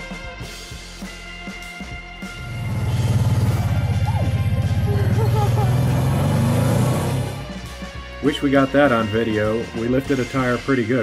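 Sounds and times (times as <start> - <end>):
background music: 0.0 - 11.0
engine pulling hard under load: 2.4 - 7.6.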